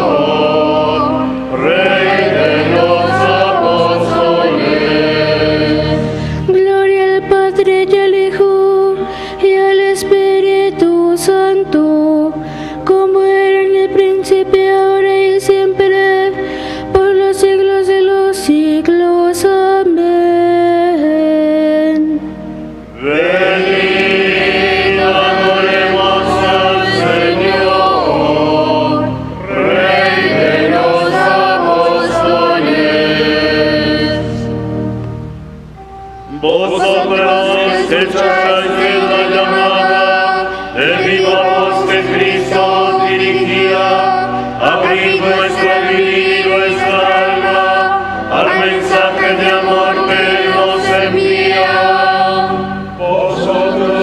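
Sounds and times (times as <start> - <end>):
choir singing a chant: 0.0 - 7.5, 23.0 - 34.5, 36.3 - 54.0.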